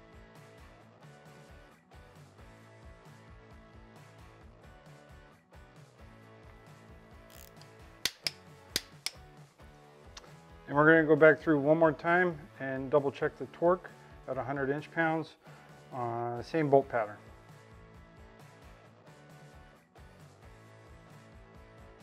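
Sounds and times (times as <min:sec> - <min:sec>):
background guitar music: 0:06.3 - 0:18.8
torque wrench clicks: 0:07.3 - 0:09.2.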